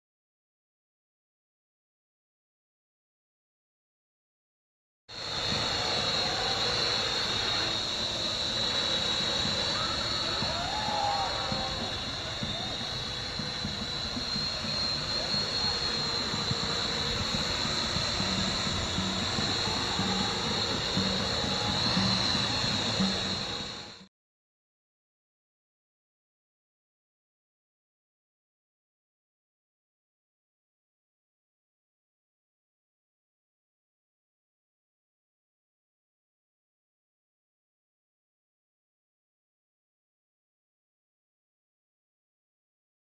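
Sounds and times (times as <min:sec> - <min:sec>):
quadcopter drone whining: 0:05.1 - 0:24.1.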